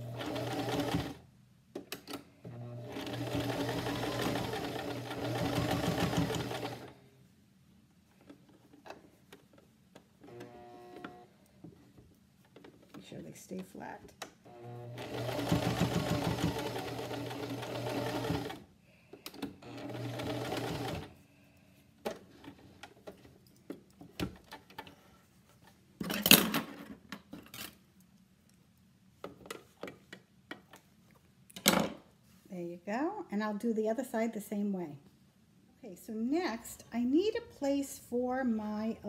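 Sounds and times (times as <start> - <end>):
sewing machine stitching: 0.0 - 1.2, 2.5 - 6.9, 14.5 - 18.6, 19.6 - 21.1.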